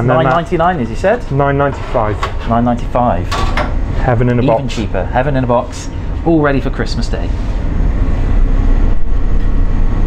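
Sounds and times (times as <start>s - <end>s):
faint steady hum: 0.0s - 10.0s
kitchen equipment low rumble: 0.0s - 10.0s.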